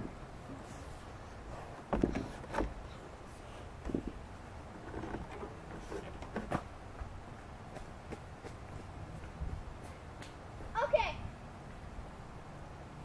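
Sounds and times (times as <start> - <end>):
knocks and thumps on wood: 1.9 - 2.8.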